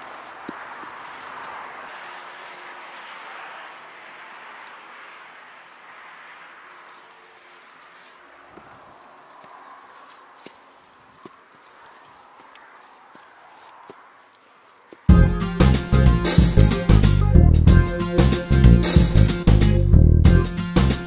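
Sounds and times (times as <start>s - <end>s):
footsteps on an outdoor path: 0.0s - 15.3s
distant road traffic rush: 0.0s - 21.0s.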